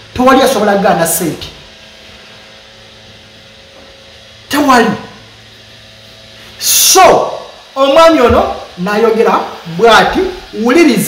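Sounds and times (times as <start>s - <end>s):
room hum and hiss: 0.0s - 11.0s.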